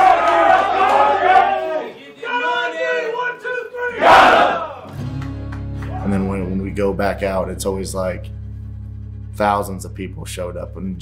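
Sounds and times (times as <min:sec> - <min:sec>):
group yelling together: 0:00.0 - 0:04.9
low steady music: 0:04.9 - 0:11.0.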